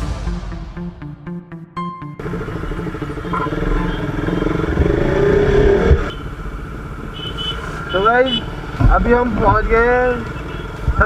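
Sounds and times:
motorcycle engine accelerating: 0:02.0 - 0:07.1
road noise: 0:02.2 - 0:11.0
man talking: 0:08.0 - 0:10.2.

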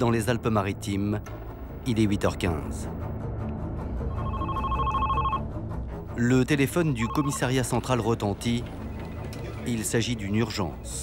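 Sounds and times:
desk telephone ringing: 0:04.2 - 0:05.4, 0:07.0 - 0:07.4.

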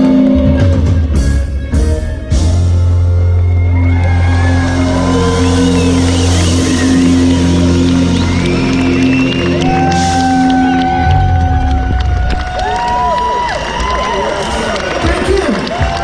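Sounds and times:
crowd cheering and whooping: 0:00.0 - 0:01.2, 0:03.1 - 0:16.0.

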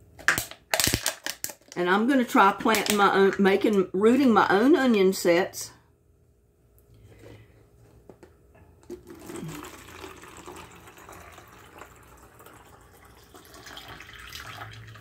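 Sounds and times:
water pouring into a plastic bottle: 0:08.8 - 0:15.0.

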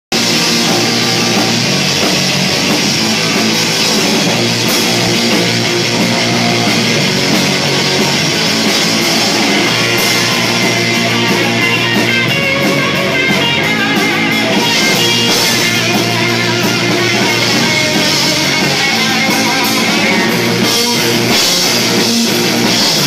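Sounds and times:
rock band playing: 0:00.1 - 0:23.0.

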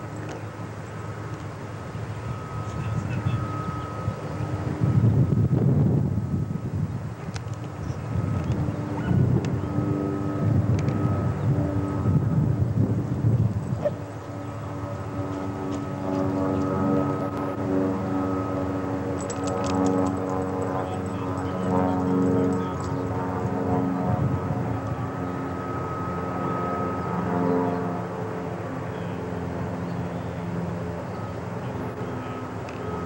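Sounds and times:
droning engine hum: 0:00.0 - 0:33.0
wind gusting on microphone: 0:01.0 - 0:28.7.

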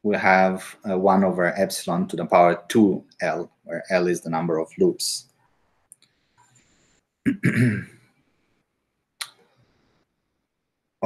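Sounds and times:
man coughing: 0:07.3 - 0:07.9.

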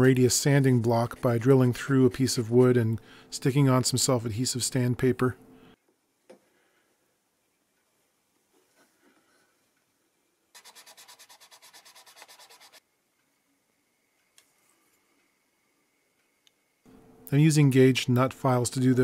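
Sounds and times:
sanding on sandpaper: 0:10.6 - 0:12.8.

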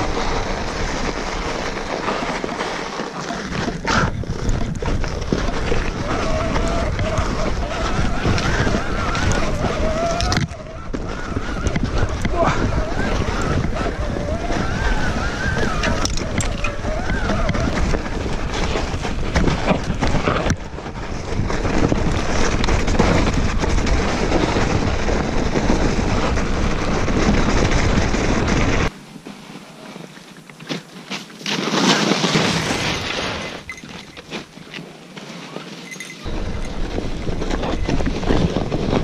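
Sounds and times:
bike tyres rolling through snow: 0:00.0 - 0:39.0
wind buffeting microphone: 0:03.5 - 0:29.0, 0:36.0 - 0:39.0.

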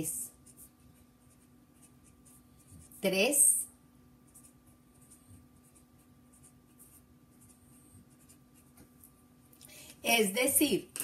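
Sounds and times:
pen scratching on paper: 0:00.0 - 0:03.3, 0:04.3 - 0:08.8
faint electrical hum: 0:00.0 - 0:11.0.

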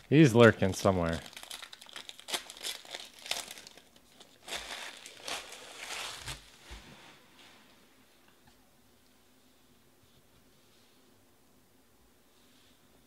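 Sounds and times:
foil wrapper crinkling and tearing: 0:00.0 - 0:06.6.

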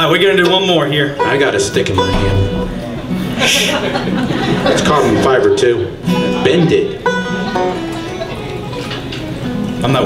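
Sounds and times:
banjo notes plucked: 0:01.0 - 0:10.0.

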